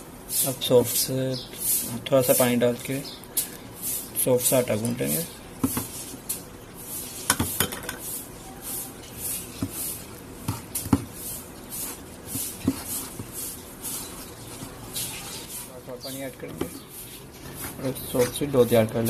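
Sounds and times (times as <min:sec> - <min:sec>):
hands rubbing flour rustle: 0:00.2 - 0:19.0.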